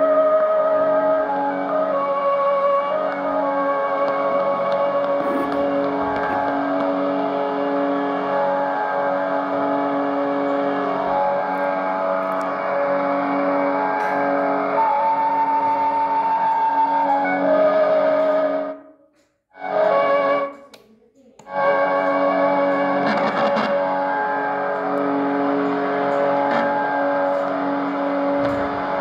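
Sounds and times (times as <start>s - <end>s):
instrumental music from radio: 0.0s - 18.8s, 19.6s - 20.7s, 21.4s - 29.0s.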